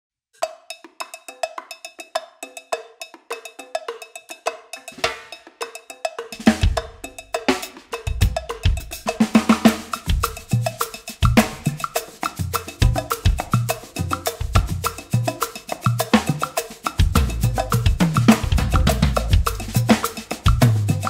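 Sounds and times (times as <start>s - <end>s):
cowbell rhythm: 0.4s - 21.0s
cymbals: 4.4s - 21.0s
drum kit playing: 4.8s - 5.6s, 6.2s - 21.0s.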